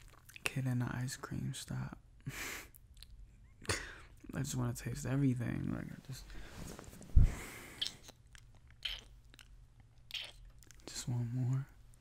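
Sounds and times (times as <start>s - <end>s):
wet kissing lip smacks: 7.8s - 9.5s, 10.1s - 10.5s.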